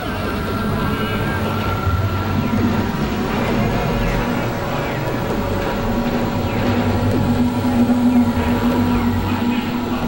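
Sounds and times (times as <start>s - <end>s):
experimental synthesizer noise music: 0.0s - 10.0s.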